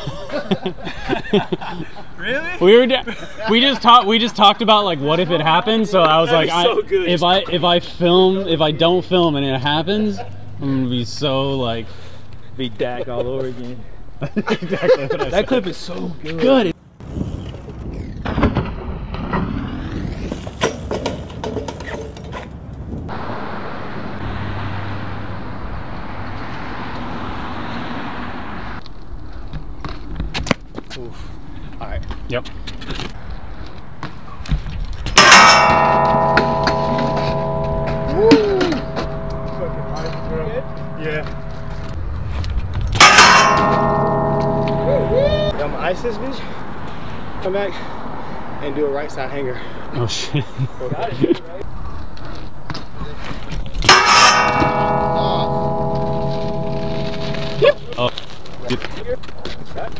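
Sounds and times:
metal handrail ringing when struck: 35.2 - 42.0, 43.0 - 45.9, 53.8 - 58.0.

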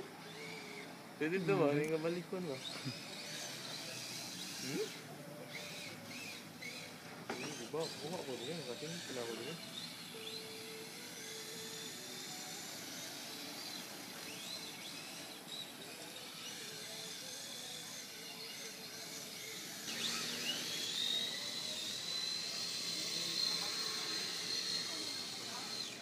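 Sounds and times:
radio-controlled car motors whining: 0.0 - 26.0.

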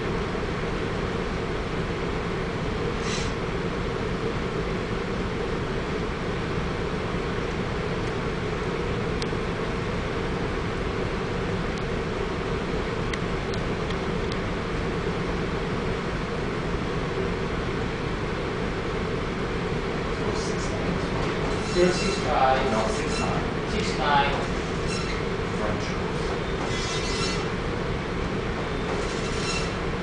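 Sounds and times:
low machinery drone: 0.0 - 30.0.

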